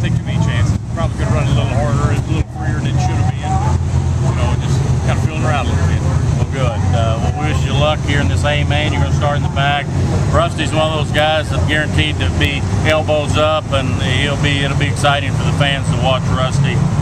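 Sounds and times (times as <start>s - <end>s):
man talking: 0.0s - 16.9s
race car engines droning: 0.0s - 17.0s.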